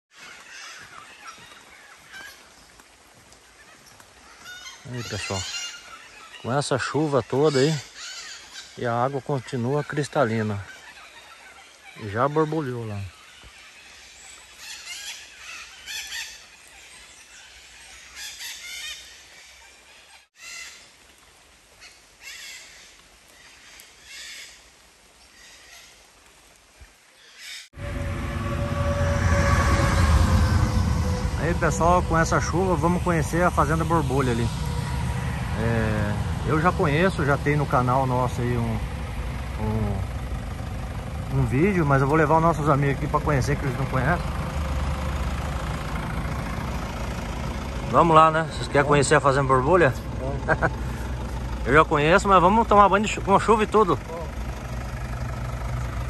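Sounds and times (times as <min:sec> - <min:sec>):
birds calling: 0:00.1 - 0:26.2, 0:26.8 - 0:56.0
loud low rumble: 0:27.8 - 0:56.0
man's voice: 0:31.3 - 0:38.9, 0:39.6 - 0:40.1.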